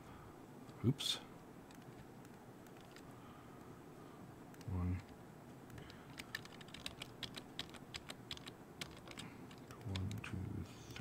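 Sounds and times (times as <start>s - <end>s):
computer keyboard typing: 1.7s - 3.0s, 5.7s - 10.2s.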